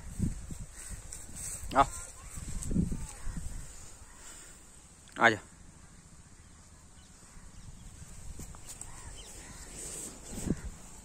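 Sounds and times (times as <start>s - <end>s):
footsteps in grass: 0.0s - 4.2s, 8.0s - 11.0s.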